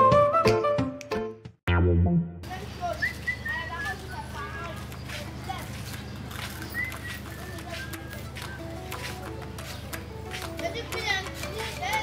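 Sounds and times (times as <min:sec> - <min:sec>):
distant voices: 0:02.5 - 0:12.0.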